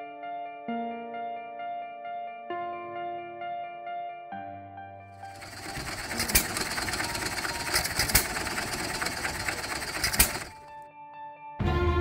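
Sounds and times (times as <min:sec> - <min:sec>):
stationary engine clattering: 0:05.2 - 0:10.8
engine sharp pops: 0:05.4 - 0:10.7.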